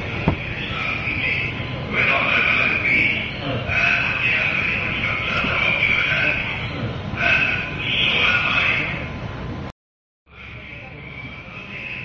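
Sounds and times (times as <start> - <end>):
man's voice through phone speaker: 0.1 - 9.1.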